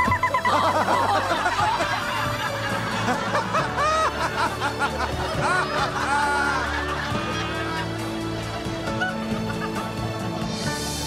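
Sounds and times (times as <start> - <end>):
people chuckling and snickering: 0.0 - 10.4
light background music: 0.0 - 11.0.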